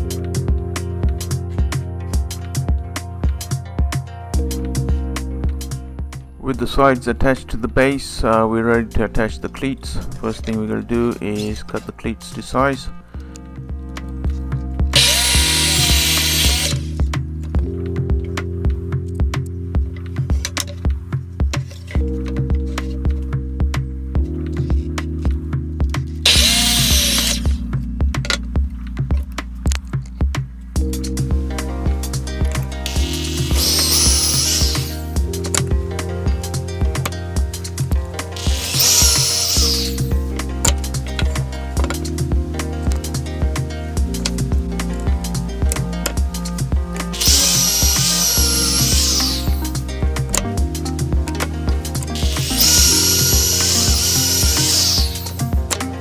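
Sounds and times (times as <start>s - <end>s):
background music with steady beat: 0.0s - 56.0s
drill boring into wood: 15.0s - 17.0s, 26.3s - 27.6s, 32.9s - 35.0s, 38.4s - 40.0s, 47.2s - 49.6s, 52.2s - 55.4s.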